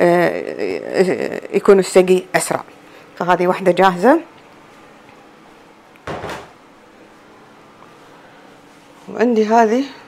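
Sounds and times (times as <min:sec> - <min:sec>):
handling noise: 0:06.0 - 0:06.6.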